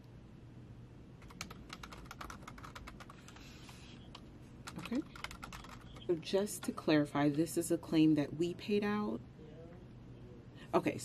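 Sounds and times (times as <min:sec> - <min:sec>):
typing on computer keyboard: 0:01.2 - 0:06.1.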